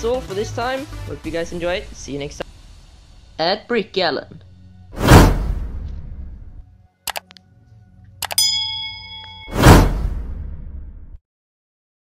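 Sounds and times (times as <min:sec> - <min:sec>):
whoosh: 0:04.9 - 0:06.5, 0:09.4 - 0:11.2
button clicks: 0:07.1 - 0:07.4, 0:08.2 - 0:08.5
bell ding: 0:08.2 - 0:09.8.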